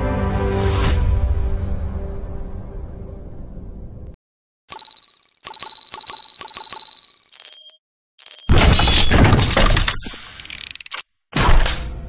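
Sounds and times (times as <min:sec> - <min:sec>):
ringing metallic chimes: 0:04.7 - 0:08.6.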